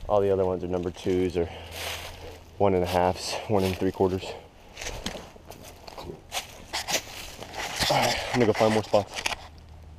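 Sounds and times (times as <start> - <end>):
footsteps on dry leaves: 0.2 - 9.2
camera jostling: 6.4 - 9.6.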